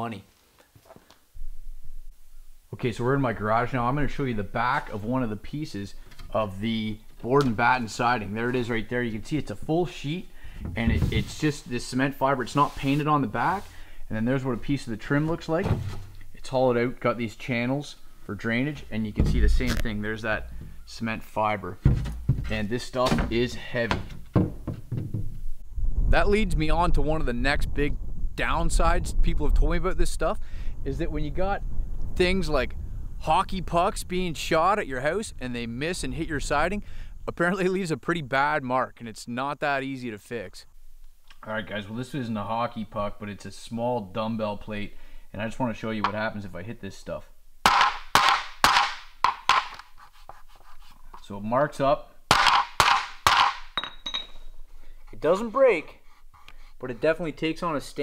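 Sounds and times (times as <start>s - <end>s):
weight plate knocking on siding: 21.8s - 22.5s, 23.2s - 25.4s, 47.7s - 49.8s, 52.3s - 53.8s
dull knocks of siding trim: 21.8s - 25.4s.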